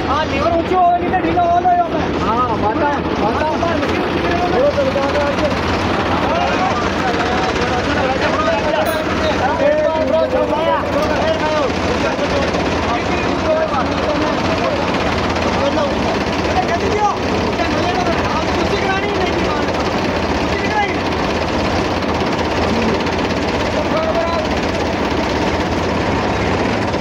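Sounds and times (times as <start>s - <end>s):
diesel tractor engines running: 0.0s - 27.0s.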